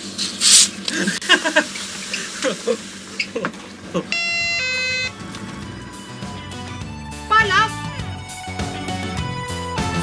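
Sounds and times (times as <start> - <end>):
two-tone door chime: 4.1 - 5.2
background music: 4.2 - 10.0.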